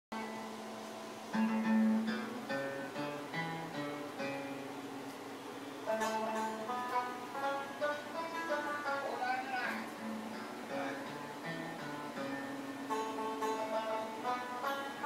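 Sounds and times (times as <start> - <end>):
guitar and banjo picking melody: 0.1 - 5.2, 5.8 - 15.0.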